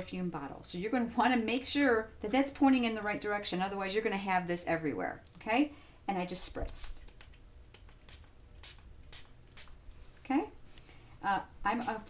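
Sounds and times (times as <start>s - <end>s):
spray bottle spritzes: 7.8s - 9.8s.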